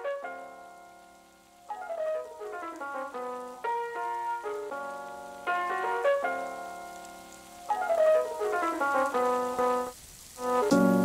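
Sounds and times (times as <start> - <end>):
keyboard background music: 0.0 - 11.0.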